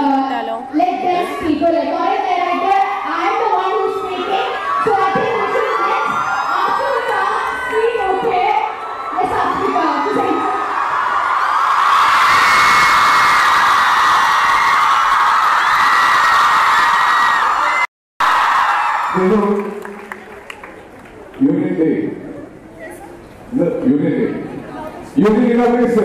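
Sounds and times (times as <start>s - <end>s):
crowd cheering and screaming: 2.6s - 19.7s.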